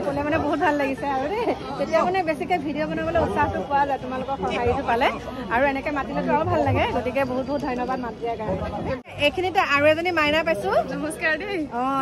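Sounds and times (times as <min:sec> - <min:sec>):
crowd hubbub: 0:00.0 - 0:12.0
women talking: 0:00.0 - 0:12.0.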